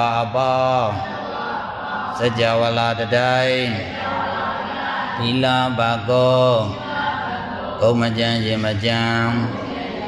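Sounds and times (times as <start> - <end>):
man chanting: 0.0 - 1.3, 2.0 - 4.4, 5.1 - 10.0.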